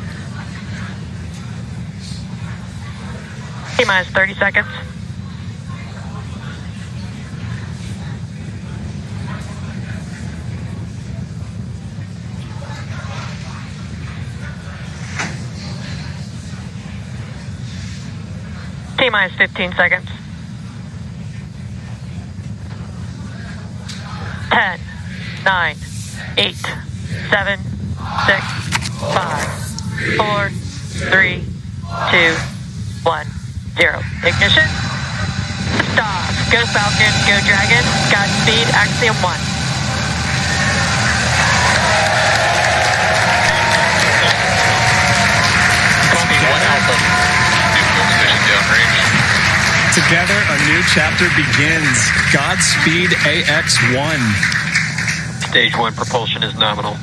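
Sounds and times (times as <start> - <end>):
low rumbling noise: 0.0 - 57.0
crowd cheering and applauding: 36.3 - 55.9.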